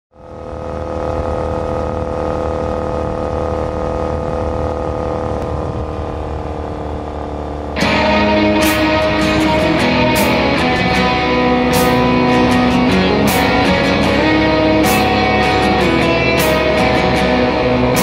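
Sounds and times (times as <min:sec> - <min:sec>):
motorcycle engine cruising: 0:00.2 - 0:18.0
guitar music: 0:07.8 - 0:18.0.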